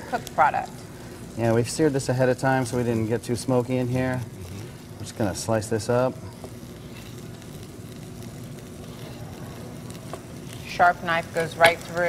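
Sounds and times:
garlic sizzling in a pan: 0:00.0 - 0:12.0.

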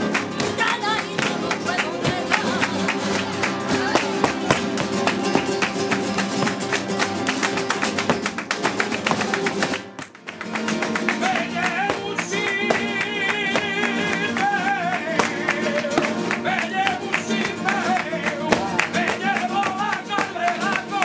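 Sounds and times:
flamenco guitars strumming: 0:00.0 - 0:21.0
hand-clapping: 0:00.0 - 0:21.0.

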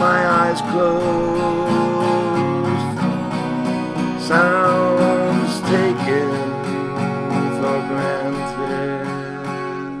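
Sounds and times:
acoustic guitar strumming: 0:00.0 - 0:10.0
person singing: 0:00.0 - 0:10.0.

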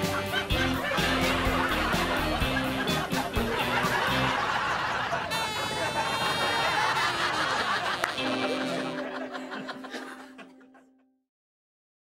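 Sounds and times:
people laughing: 0:00.0 - 0:11.1.

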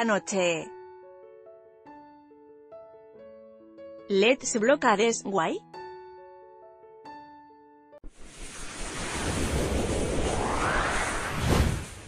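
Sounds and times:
rising sweep: 0:08.1 - 0:12.0
whoosh rush of noise: 0:08.1 - 0:12.0.

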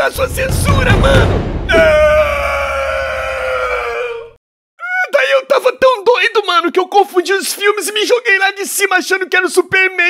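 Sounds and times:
man yelling: 0:00.0 - 0:05.7.

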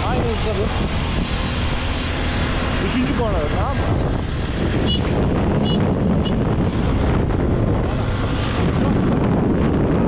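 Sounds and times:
scooter engine at low speed: 0:00.0 - 0:10.0
wind noise on microphone: 0:00.0 - 0:10.0.

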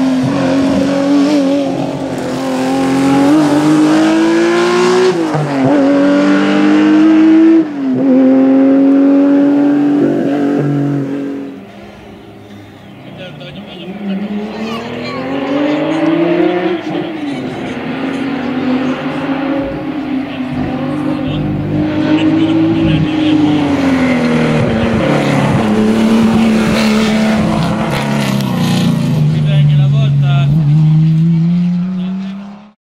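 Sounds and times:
rally car engine running hard: 0:13.3 - 0:32.8.

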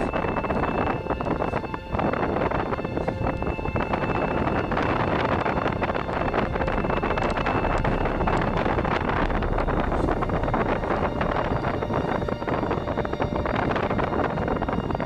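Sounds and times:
road and tyre noise: 0:00.0 - 0:15.0
wind rumbling on microphone: 0:00.0 - 0:15.0.

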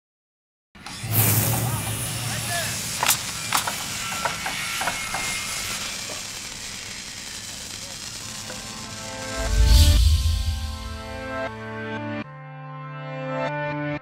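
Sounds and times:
low hum: 0:09.1 - 0:11.5
whoosh: 0:09.3 - 0:11.5.

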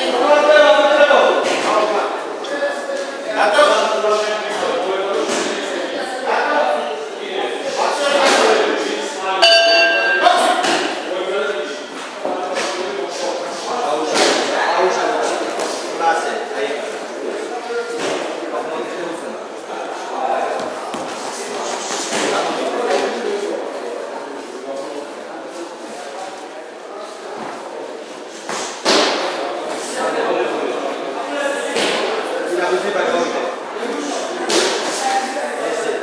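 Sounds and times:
voices in echoing hall: 0:00.0 - 0:36.0.

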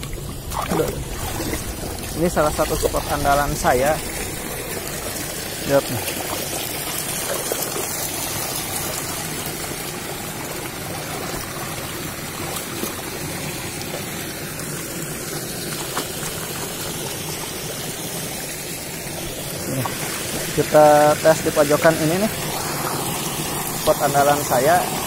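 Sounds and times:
stream splashing over stones: 0:00.0 - 0:25.0.

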